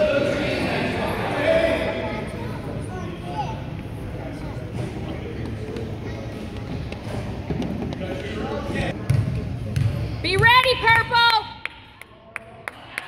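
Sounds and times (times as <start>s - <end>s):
spectators chattering: 0.0s - 10.4s.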